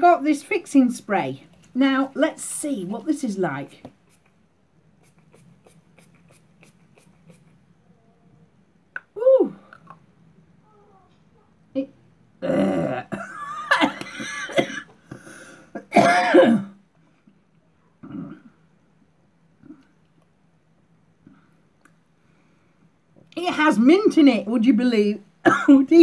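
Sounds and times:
woman coughing: 12.4s - 14.9s, 15.8s - 16.8s, 25.4s - 25.9s.

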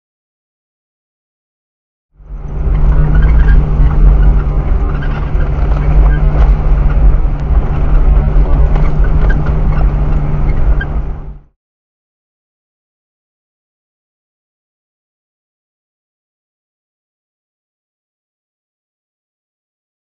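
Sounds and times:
vehicle engine drone: 2.2s - 11.6s
vehicle knocks and rattles: 2.3s - 11.5s.

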